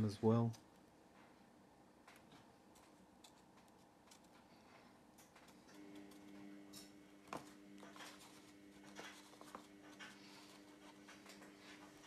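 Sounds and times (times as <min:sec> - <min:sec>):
faint steady hum: 0:00.0 - 0:12.0
pad rustling and scratching: 0:07.3 - 0:12.0.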